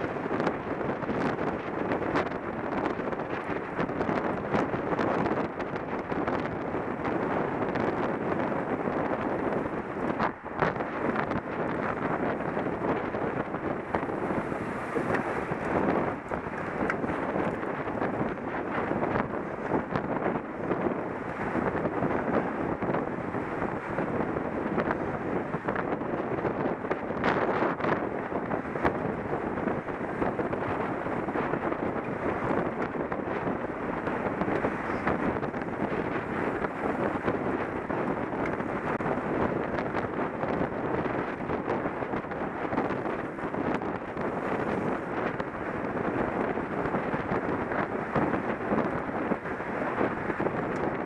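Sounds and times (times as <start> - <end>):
wind buffeting microphone: 0.0 - 51.0.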